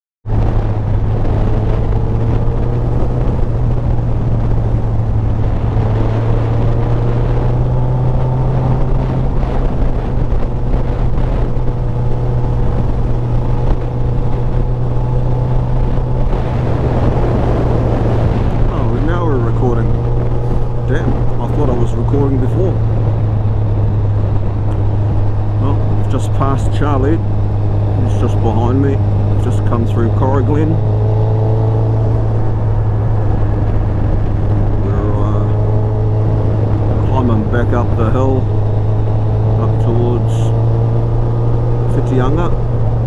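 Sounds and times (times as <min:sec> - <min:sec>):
motorcycle engine running: 0:00.2 - 0:43.0
wind rush on microphone: 0:00.2 - 0:43.0.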